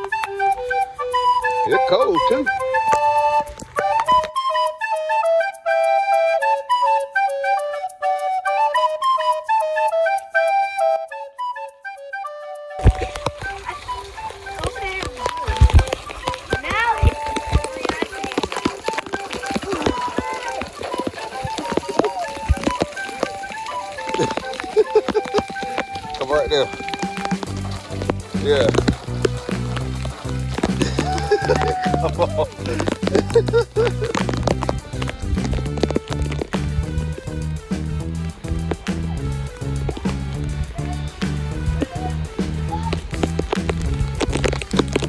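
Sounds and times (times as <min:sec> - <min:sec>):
simple melody: 0:00.0 - 0:45.0
heavy rain hissing: 0:12.8 - 0:45.0.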